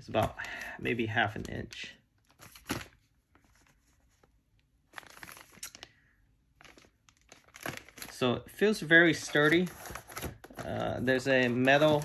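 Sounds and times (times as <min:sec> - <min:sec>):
plastic wrapping crinkling: 0:01.2 - 0:12.0.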